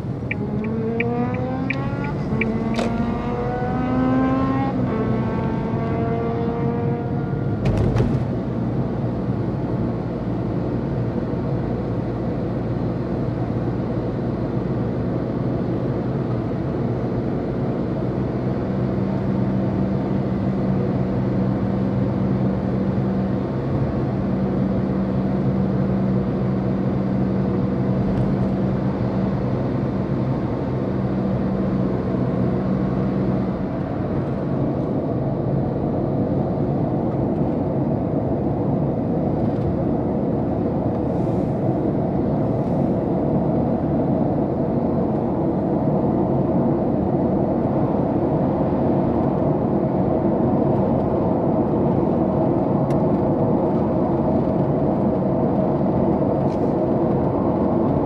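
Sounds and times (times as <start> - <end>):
car tyres and engine rumble: 0.0 - 58.0.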